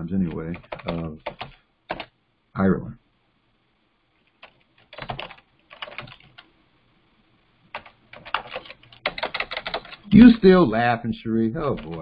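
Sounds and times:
keyboard typing clicks: 0.3s - 2.1s, 4.4s - 6.5s, 7.7s - 10.0s.

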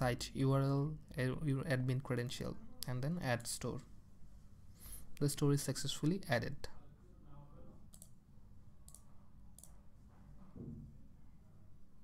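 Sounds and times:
low steady hum: 0.0s - 12.0s
computer mouse clicks: 7.9s - 8.2s, 8.8s - 9.8s.

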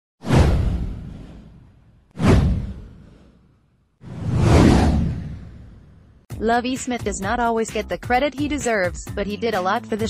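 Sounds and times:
whoosh with deep boom: 0.2s - 6.3s.

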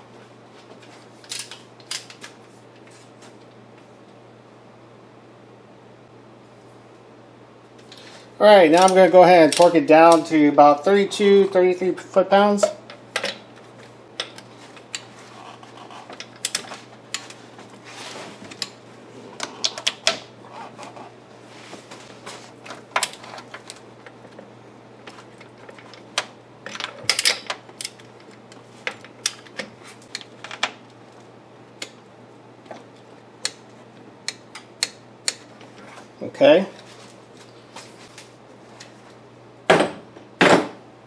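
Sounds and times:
faint steady hum: 0.0s - 41.0s.

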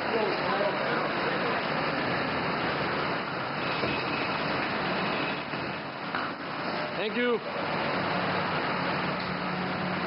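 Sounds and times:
traffic din: 0.0s - 10.0s.

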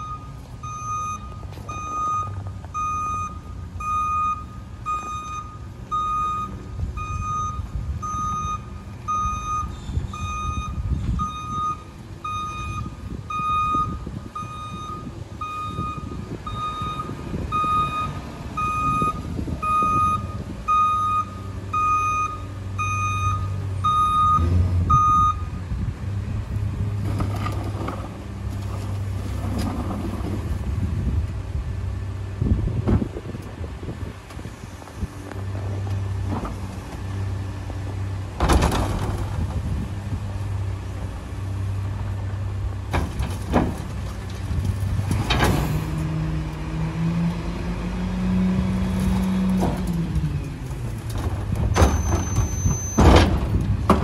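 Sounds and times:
truck backup alarm beeping: 0.0s - 25.6s, 51.6s - 53.7s
diesel engine running: 0.0s - 54.0s.

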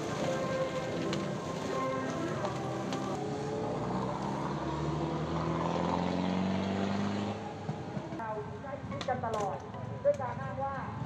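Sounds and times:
voices in street: 0.0s - 5.2s, 7.0s - 11.0s.

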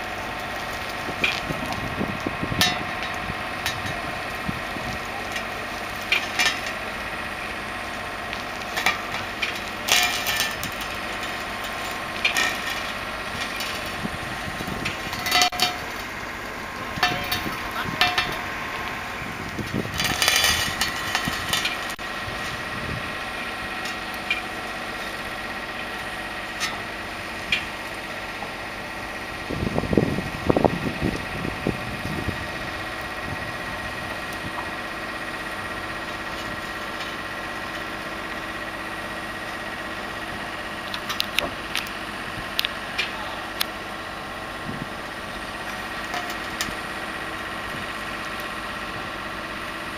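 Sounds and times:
diesel engine idling: 0.0s - 49.9s
metallic clanks and squeaks of wheels: 4.8s - 23.0s, 44.6s - 47.1s.

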